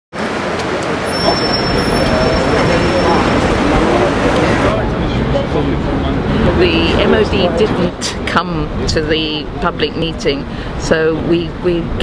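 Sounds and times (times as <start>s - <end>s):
road traffic: 0.1s - 12.0s
voices talking: 0.3s - 12.0s.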